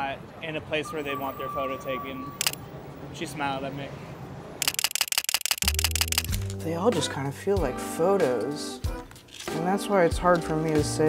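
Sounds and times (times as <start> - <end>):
fast mechanical clicks: 4.6 - 6.4
low steady music: 5.8 - 11.0.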